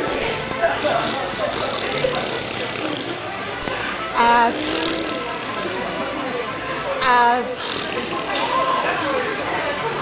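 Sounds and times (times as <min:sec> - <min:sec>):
baby blowing raspberries: 0:00.0 - 0:05.6, 0:07.6 - 0:08.3
voices in background: 0:00.0 - 0:10.0.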